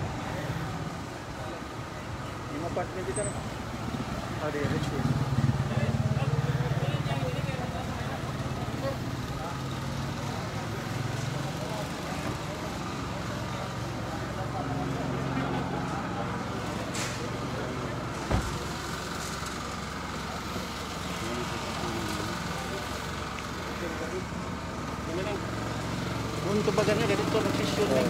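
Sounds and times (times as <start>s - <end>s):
vehicle engine running: 0.0s - 28.0s
people talking: 4.4s - 25.7s, 26.4s - 28.0s.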